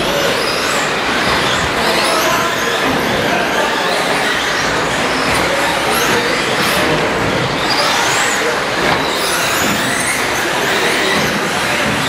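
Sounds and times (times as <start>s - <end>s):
rc truck motors whining: 0.0s - 12.0s.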